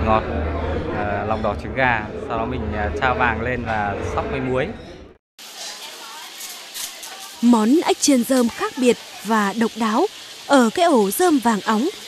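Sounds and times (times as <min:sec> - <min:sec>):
hot oil sizzling: 0:05.4 - 0:12.0.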